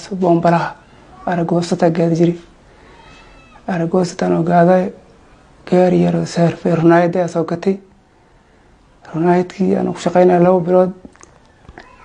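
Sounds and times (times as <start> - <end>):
man speaking: 0.0 - 2.5.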